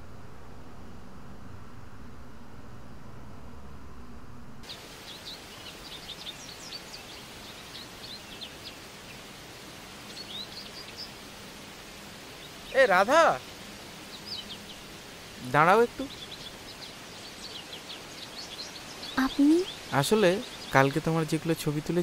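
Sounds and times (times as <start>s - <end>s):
low steady hum: 0.0s - 12.5s
birds chirping: 4.6s - 22.0s
outdoor hiss: 4.6s - 22.0s.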